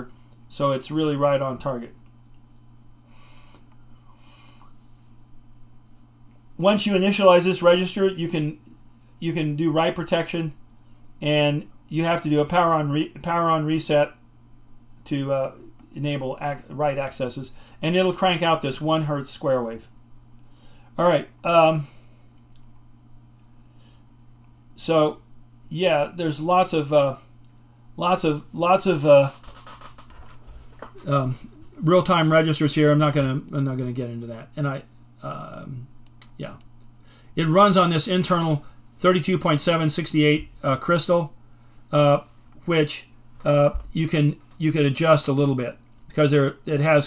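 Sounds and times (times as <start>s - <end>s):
steady low hum: 0.0s - 47.0s
man breathing softly: 3.0s - 5.1s, 17.5s - 17.8s, 20.4s - 21.0s.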